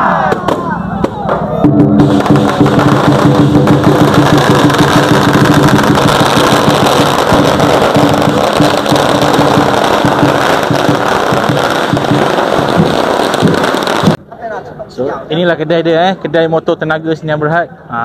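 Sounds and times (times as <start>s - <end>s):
drums and cymbals: 0.2s - 14.2s
firecrackers crackling: 0.2s - 14.2s.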